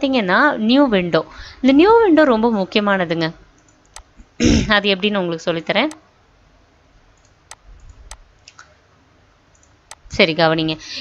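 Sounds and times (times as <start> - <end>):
computer mouse clicks: 3.6 - 4.1, 7.2 - 8.6, 9.5 - 10.0.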